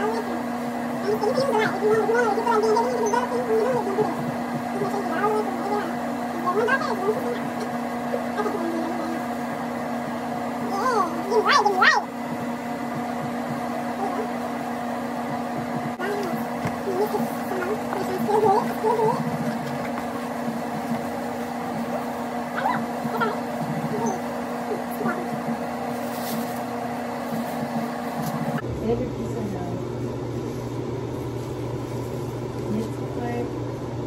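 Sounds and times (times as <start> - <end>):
exhaust fan humming: 0.0 - 34.0.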